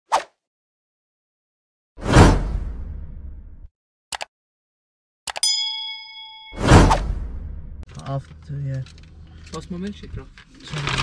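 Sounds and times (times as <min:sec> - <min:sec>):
whoosh with deep boom: 0:02.0 - 0:03.7, 0:06.6 - 0:07.8
bright ringing ding: 0:05.4 - 0:06.9.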